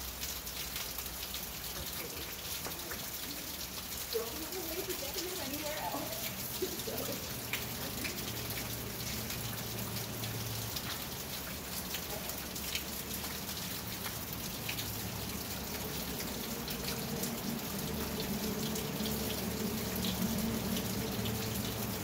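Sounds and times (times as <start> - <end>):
rain pattering on a roof: 0.0 - 22.0.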